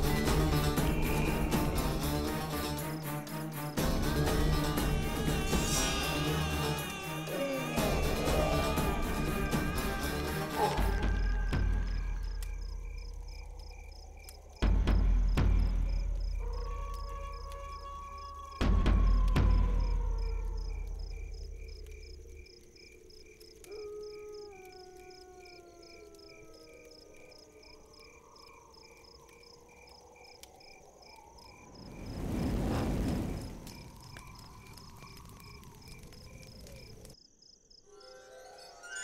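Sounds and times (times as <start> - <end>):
insects chirping: 0.0 - 39.0.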